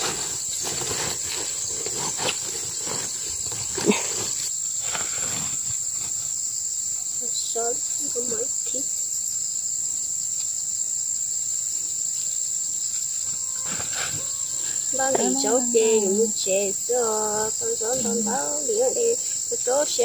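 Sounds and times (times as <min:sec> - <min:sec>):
rustling of leafy greens: 0:00.0 - 0:06.5, 0:13.6 - 0:20.0
insects droning: 0:00.0 - 0:20.0.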